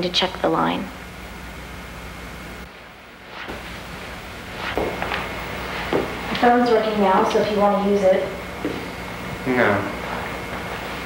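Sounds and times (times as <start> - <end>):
room tone hum and hiss: 0.0 - 11.0.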